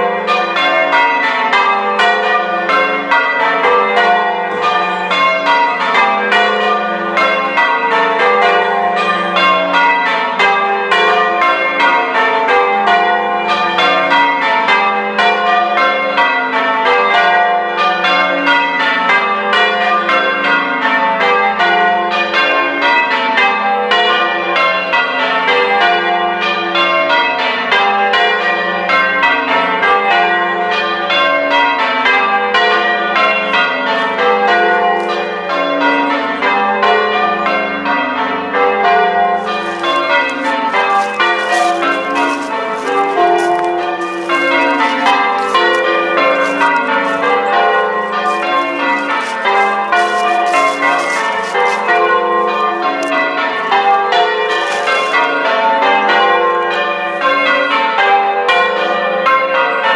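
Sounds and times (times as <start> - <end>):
church bells ringing: 0.0 - 59.9.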